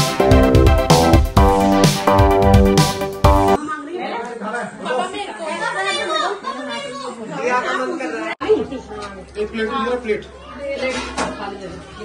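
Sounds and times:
people chattering: 0:03.6 - 0:12.0.

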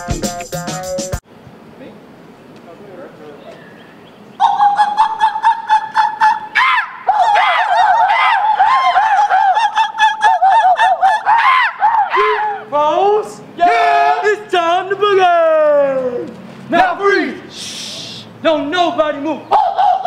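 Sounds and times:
young men yelping calls: 0:04.4 - 0:20.0.

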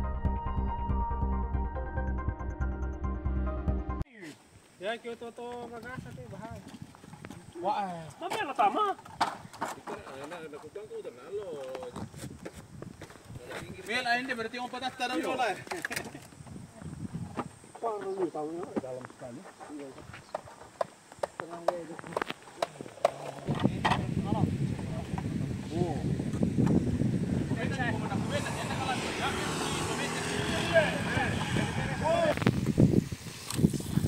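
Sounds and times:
men talking indistinctly: 0:09.6 - 0:12.1, 0:13.3 - 0:15.9, 0:17.7 - 0:20.2, 0:21.4 - 0:26.2, 0:27.4 - 0:32.5
footsteps on gravel: 0:11.6 - 0:14.4.

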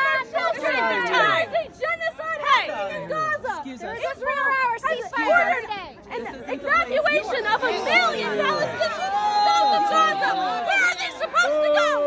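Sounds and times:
crowd chatter: 0:00.0 - 0:12.0
woman shouting: 0:06.6 - 0:12.0.

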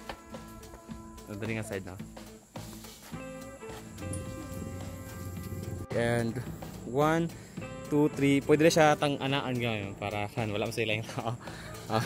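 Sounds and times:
background music with held notes: 0:00.0 - 0:12.0.

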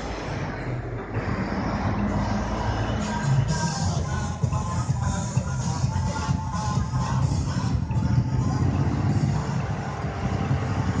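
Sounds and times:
ride machinery rumbling: 0:00.0 - 0:11.0.

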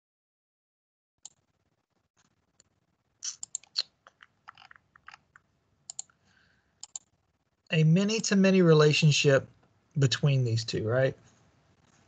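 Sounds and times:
computer mouse clicking: 0:02.6 - 0:06.2, 0:06.8 - 0:07.1.

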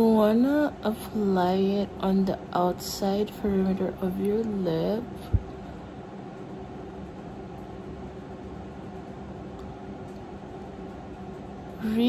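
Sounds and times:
background hum with hiss: 0:00.0 - 0:12.0.

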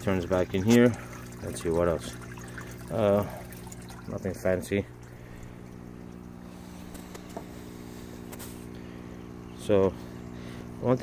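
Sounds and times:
electric pump hum: 0:00.0 - 0:11.0.

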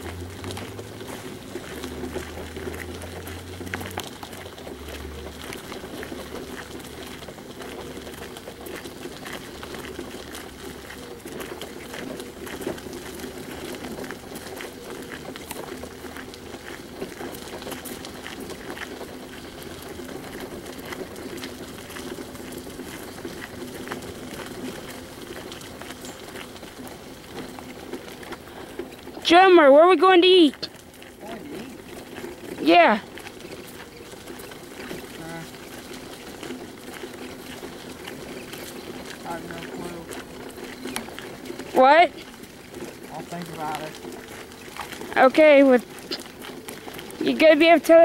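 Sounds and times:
footsteps on gravel: 0:00.0 - 0:48.0.

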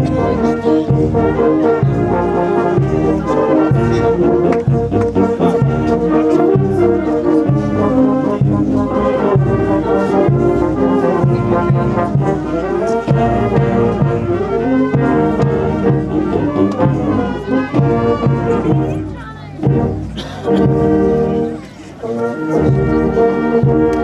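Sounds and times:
brass band playing: 0:00.0 - 0:24.0.

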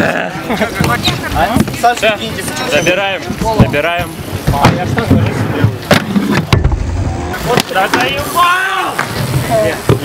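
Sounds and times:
skate wheels rolling on concrete: 0:00.0 - 0:10.0
voices calling out: 0:00.0 - 0:10.0.

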